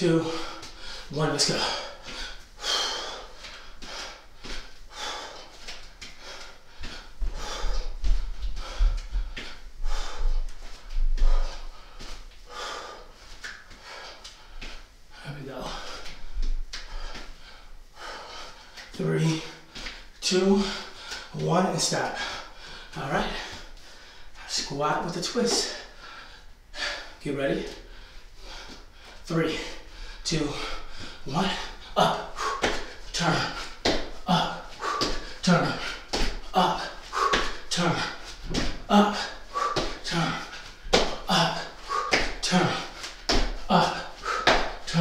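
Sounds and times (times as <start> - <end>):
man breathing hard: 0.0 - 45.0
man panting and gasping: 0.0 - 45.0.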